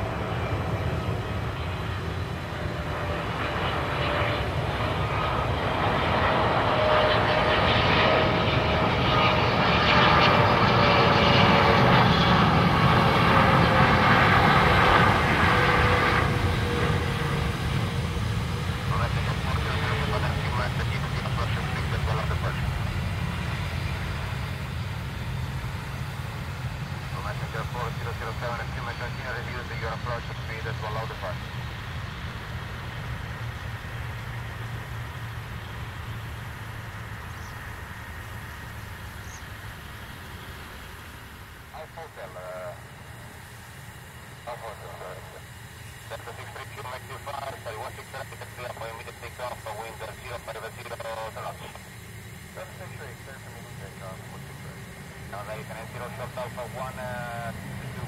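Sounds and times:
jet engines whining: 0.0 - 58.0.

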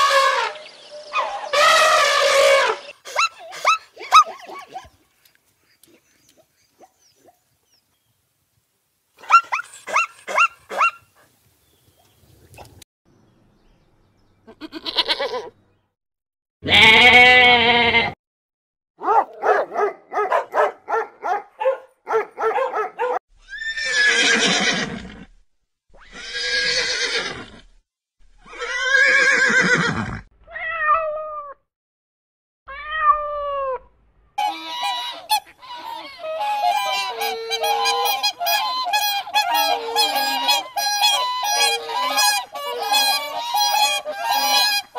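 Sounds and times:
waterfowl honking: 1.2 - 4.3, 34.4 - 44.9
horse whinnying: 1.4 - 4.3, 16.6 - 18.2, 23.4 - 25.3, 26.0 - 27.7, 28.4 - 30.8
goat bleating: 14.5 - 15.6, 16.6 - 18.2, 34.4 - 44.9.

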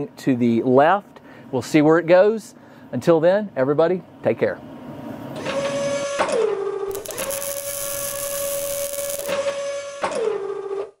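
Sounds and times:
hissing rush: 6.9 - 9.3
mechanical whine: 6.9 - 10.0.

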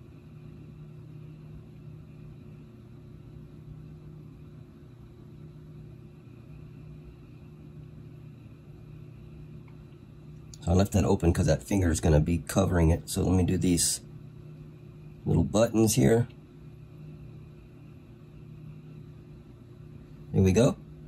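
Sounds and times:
low background hum with hiss: 0.0 - 21.0.

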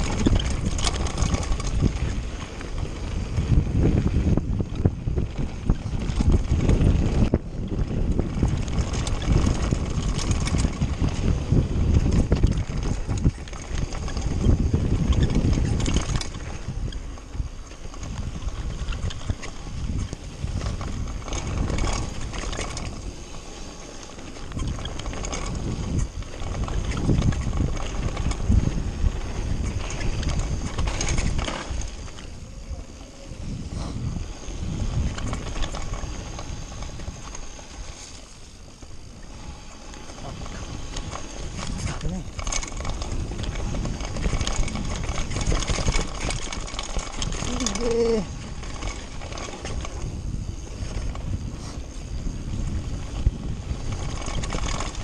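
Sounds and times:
bike knocks and rattles: 0.0 - 23.3, 24.0 - 32.7, 33.3 - 55.0
wind rumble on microphone: 0.0 - 55.0
tyres crunching over gravel: 8.4 - 55.0.

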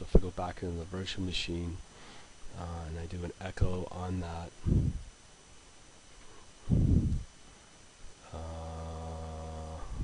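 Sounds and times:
man humming: 6.6 - 7.3, 8.2 - 10.0.

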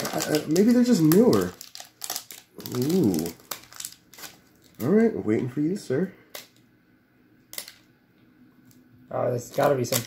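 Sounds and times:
foil wrapper crackling: 0.0 - 5.5, 9.4 - 10.0.

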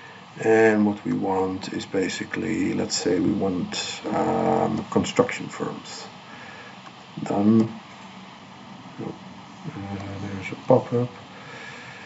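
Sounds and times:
faint background hiss: 0.0 - 12.0
man speaking: 0.4 - 6.2, 7.2 - 7.8, 9.0 - 11.2.

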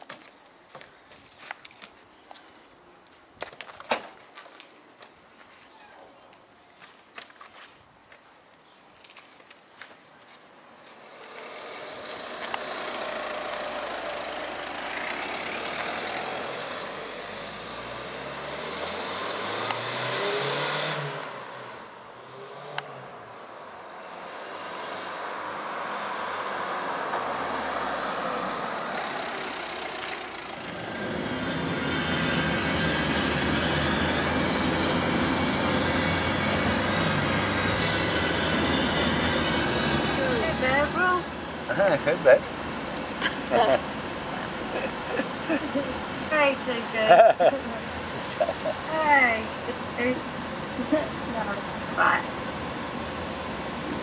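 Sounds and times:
road noise: 0.0 - 54.0
car engine: 11.0 - 54.0.

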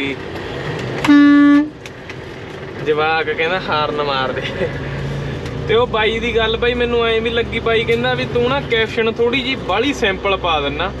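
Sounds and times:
low road hum: 0.0 - 11.0
truck horn blast: 1.0 - 1.8.

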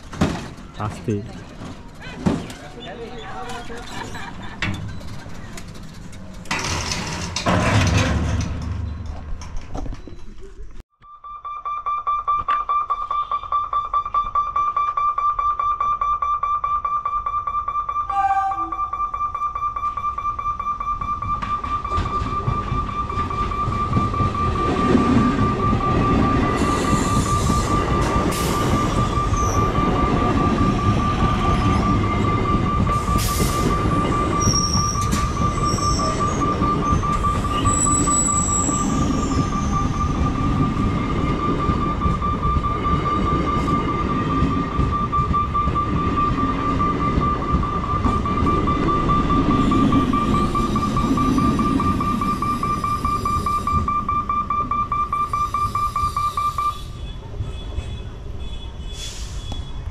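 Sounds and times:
level crossing warning bell: 11.4 - 56.9
electric train rumbling past: 18.1 - 57.5.

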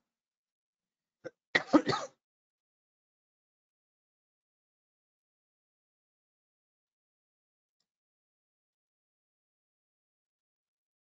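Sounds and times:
man clearing his throat: 1.6 - 2.1.

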